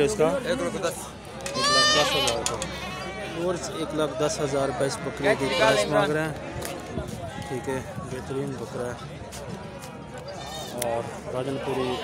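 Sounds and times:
goat bleating: 1.5 - 3.1.

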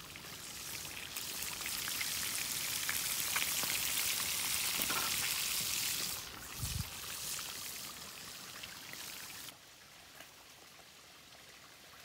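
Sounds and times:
fish sizzling in hot oil: 0.0 - 9.6.

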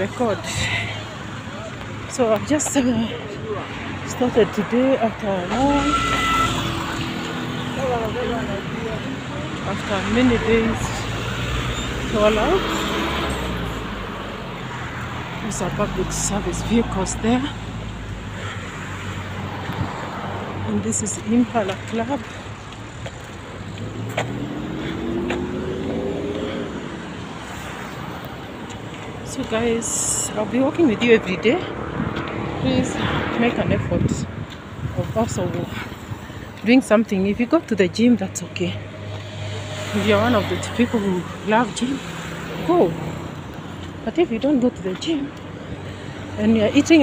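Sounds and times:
road traffic noise: 0.0 - 47.0
motor vehicle engine passing: 6.0 - 29.3.

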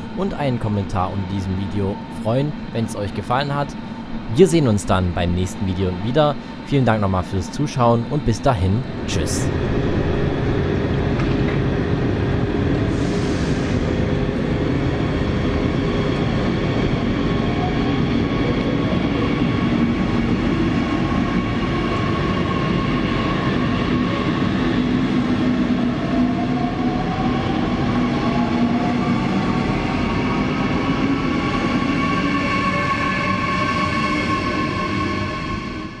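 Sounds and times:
train rolling noise: 0.0 - 36.0
electric drive whine rising: 8.6 - 12.7.

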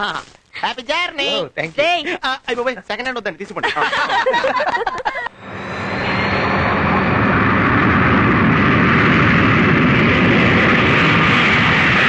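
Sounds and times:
faint engine whine: 5.2 - 12.0
jet engines at takeoff power: 5.2 - 12.0.

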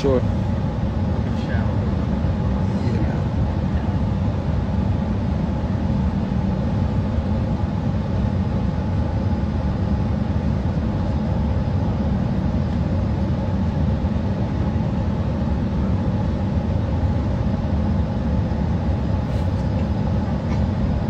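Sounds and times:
airliner cabin rumble: 0.0 - 21.0.

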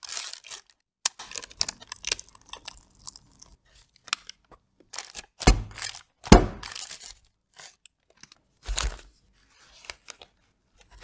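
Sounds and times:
parchment paper crunching: 0.0 - 11.0
cake mould thumping on table: 6.3 - 6.6.

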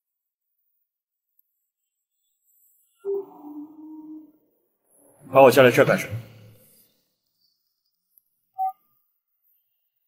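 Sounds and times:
short phone beep: 8.6 - 8.8.

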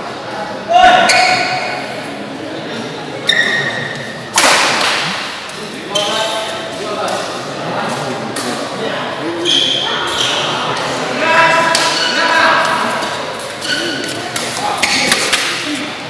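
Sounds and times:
voices in sports hall: 0.0 - 16.0
shoes squeaking on court floor: 3.2 - 4.2, 5.9 - 6.7, 9.4 - 11.0, 12.9 - 15.4.

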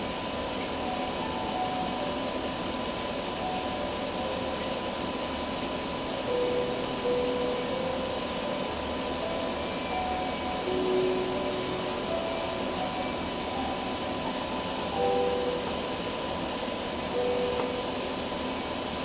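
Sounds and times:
aquarium equipment hiss and hum: 0.0 - 19.0
faint music: 0.0 - 19.0.

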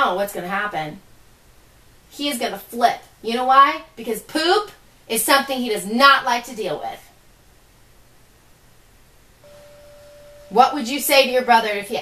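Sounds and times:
steady electronic beep: 9.4 - 11.0.

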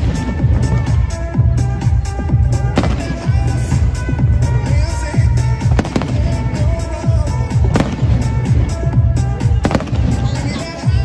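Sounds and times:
loud music with bass beat: 0.0 - 11.0
firework shells bursting: 2.8 - 3.3.

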